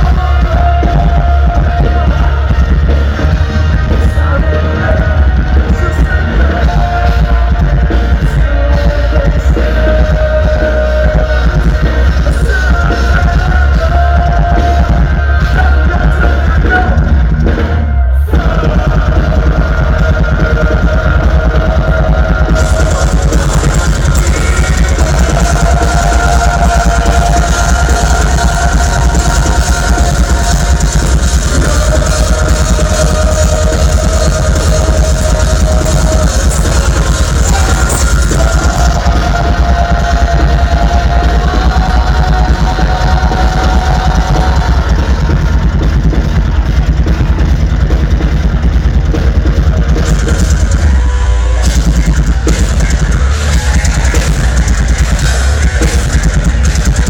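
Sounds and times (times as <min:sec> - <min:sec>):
metal band playing live: 0:00.0 - 0:57.0.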